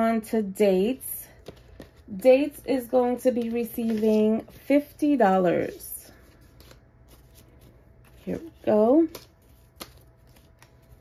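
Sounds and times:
paper rustling: 3.2 - 4.8, 6.1 - 11.0.

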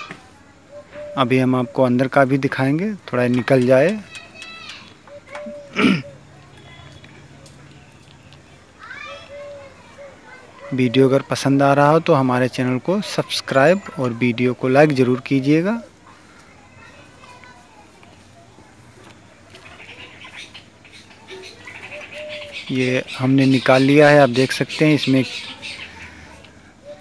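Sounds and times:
low background noise: 0.0 - 27.0
faint animal calls: 19.5 - 27.0.

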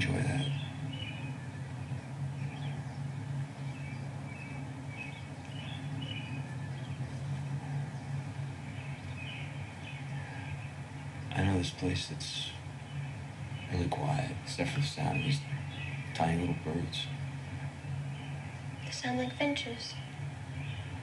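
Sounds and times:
small birds chirping: 0.0 - 21.0
steady low rumble: 0.0 - 21.0.

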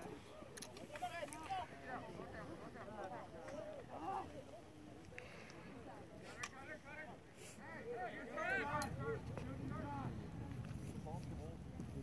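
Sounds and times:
wind rumble on microphone: 8.6 - 12.0.

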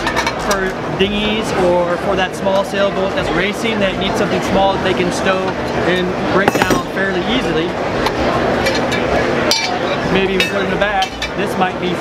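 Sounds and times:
murmur of voices: 0.0 - 12.0
metal parts clinking: 6.5 - 6.9.

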